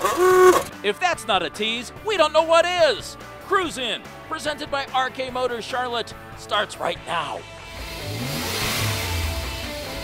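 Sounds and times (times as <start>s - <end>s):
theme music: 0.1s - 10.0s
car engine revving: 7.0s - 10.0s.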